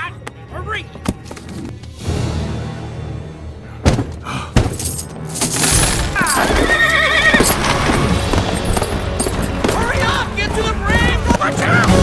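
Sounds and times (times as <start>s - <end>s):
film music: 0.0s - 12.0s
horse whinnying: 6.1s - 8.0s
galloping hoofbeats: 6.3s - 10.3s.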